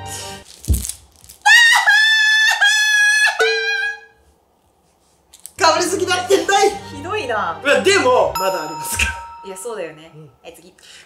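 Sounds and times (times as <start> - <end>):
high-pitched jingle: 8.4 - 10.4.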